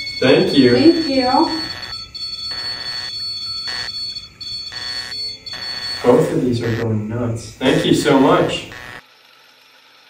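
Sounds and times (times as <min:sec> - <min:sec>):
high-pitched electronic alarm tone: 0:00.0 - 0:09.0.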